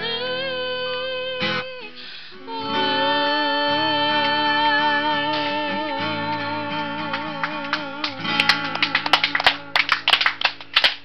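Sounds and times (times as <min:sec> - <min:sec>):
people clapping: 0:06.2 - 0:11.0.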